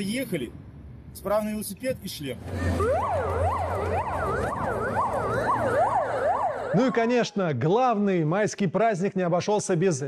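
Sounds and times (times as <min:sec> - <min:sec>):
emergency siren yelping: 0:02.5 - 0:07.2.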